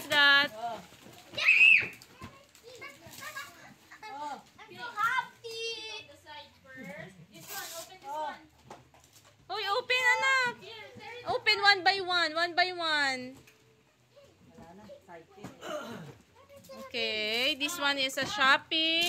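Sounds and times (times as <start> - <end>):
child shouting: 1.3 - 3.5.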